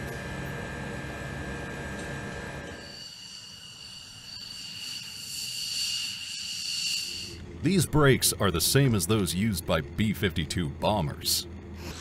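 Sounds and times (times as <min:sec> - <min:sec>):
low mechanical hum: 0:00.0 - 0:12.0
two-tone jet turbine whine: 0:00.0 - 0:12.0.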